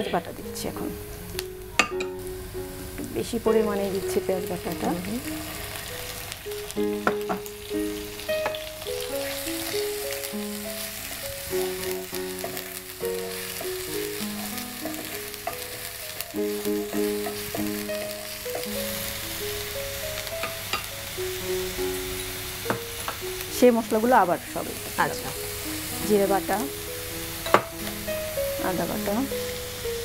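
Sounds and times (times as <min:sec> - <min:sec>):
onions sizzling in hot oil: 0:00.0 - 0:30.0
slow melodic background music: 0:00.0 - 0:30.0.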